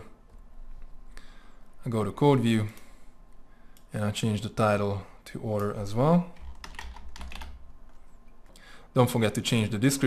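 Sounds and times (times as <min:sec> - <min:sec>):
computer keyboard keys clicking: 0:06.4 - 0:07.6.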